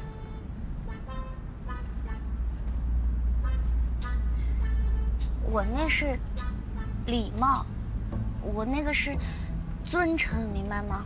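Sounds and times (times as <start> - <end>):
car road rumble: 0.0 - 11.0.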